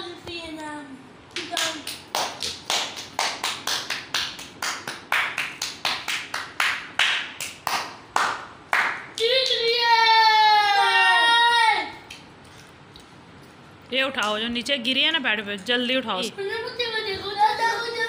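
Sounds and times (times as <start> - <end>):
child clapping hands: 1.3 - 9.9
child shouting: 9.2 - 12.1.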